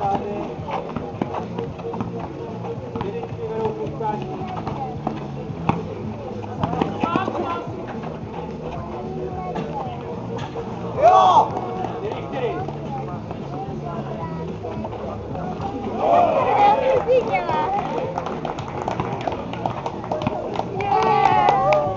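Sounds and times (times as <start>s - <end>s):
background music with low beat: 0.0s - 21.9s
players calling out: 14.4s - 18.3s.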